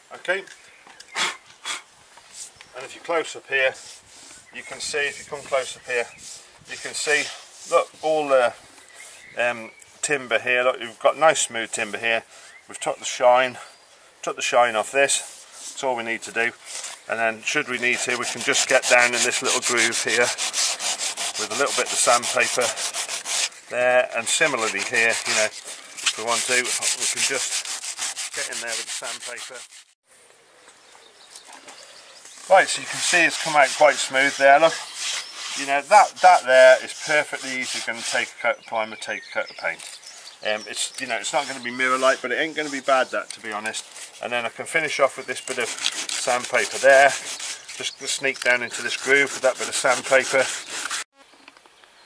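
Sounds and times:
faint outdoor background noise: 0.0s - 52.0s
hand rubbing sanded wood: 3.6s - 9.2s, 14.7s - 30.0s, 32.3s - 39.9s, 40.5s - 51.1s.

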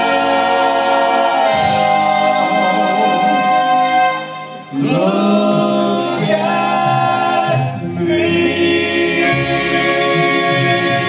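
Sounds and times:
male vocal trio singing harmony: 0.0s - 11.0s.

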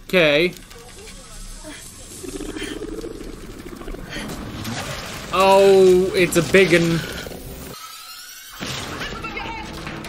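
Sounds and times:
rapid rattling creature chitter: 0.6s - 5.6s.

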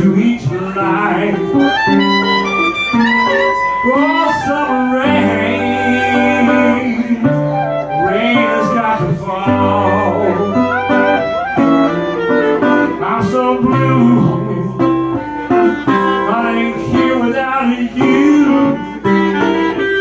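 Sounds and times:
clarinet: 0.0s - 20.0s
guitar playing blues: 0.0s - 20.0s.

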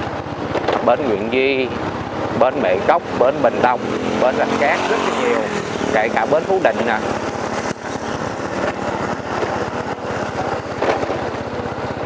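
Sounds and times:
motorbike engine running: 0.0s - 12.0s
road and wind noise: 0.0s - 12.0s.

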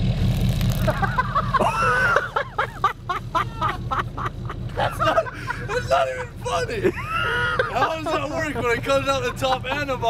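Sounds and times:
person laughing hard: 0.9s - 9.9s.

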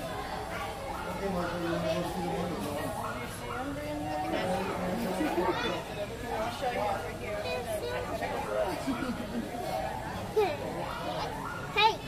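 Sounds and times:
chatter of children and adults: 0.0s - 12.0s.

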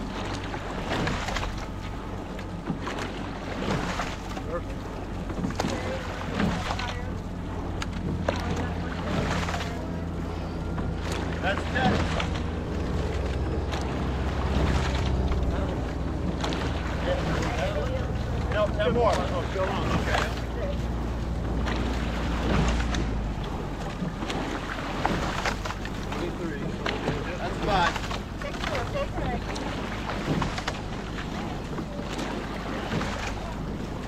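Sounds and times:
oars splashing and knocking: 0.0s - 34.0s
water rushing along hull: 0.0s - 34.0s.

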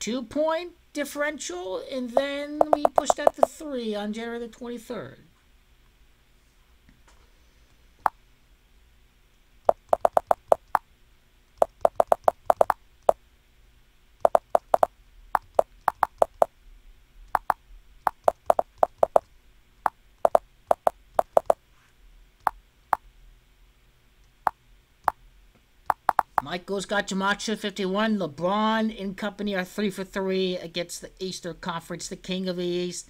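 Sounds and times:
computer keyboard keys clicking: 2.6s - 3.5s, 9.7s - 10.8s, 11.6s - 12.8s, 14.3s - 16.5s, 17.4s - 19.2s, 20.3s - 21.6s, 25.9s - 26.4s.

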